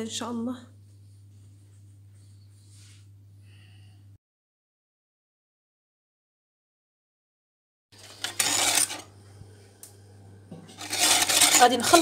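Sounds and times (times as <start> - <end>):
whisk scraping a pot: 8.0 - 9.0, 10.6 - 12.0.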